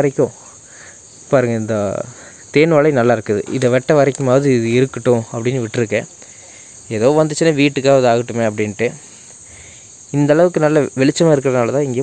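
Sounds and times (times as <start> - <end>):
man talking: 0.0 - 0.6, 1.3 - 9.4, 10.1 - 12.0
high-pitched insect chorus: 0.0 - 12.0.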